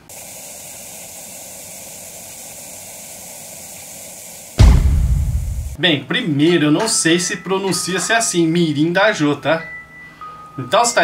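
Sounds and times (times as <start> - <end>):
loud low hit: 4.6 - 5.8.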